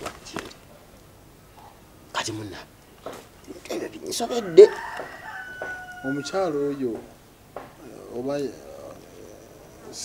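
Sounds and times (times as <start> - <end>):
rooster crowing: 4.0 - 7.2.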